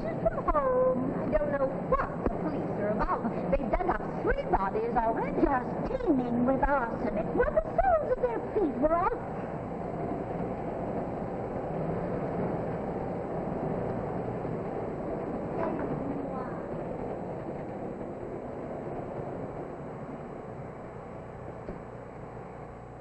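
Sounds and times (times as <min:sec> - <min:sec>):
railway carriage running: 0:00.0 - 0:23.0.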